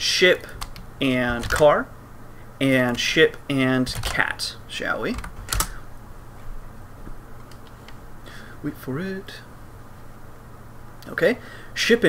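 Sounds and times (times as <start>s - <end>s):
keyboard key clack: 5.2s - 5.8s.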